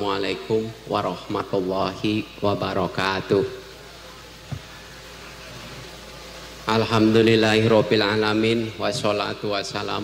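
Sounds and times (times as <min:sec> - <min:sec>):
sound system hiss and hum: 0:00.0 - 0:10.0.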